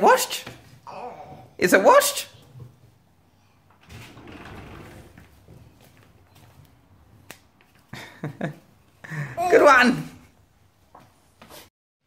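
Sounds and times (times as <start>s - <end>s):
clothes rustling in washing machine: 3.8s - 6.5s.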